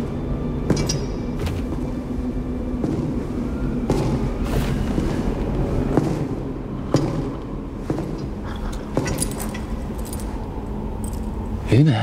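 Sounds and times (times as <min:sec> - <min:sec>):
steady low hum: 0:00.0 - 0:12.0
small metal pieces clinking: 0:09.0 - 0:10.4.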